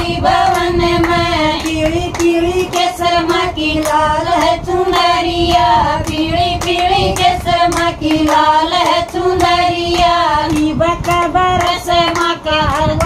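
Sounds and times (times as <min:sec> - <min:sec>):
women singing devotional song: 0:00.0 - 0:13.0
hands clapping: 0:00.4 - 0:13.0.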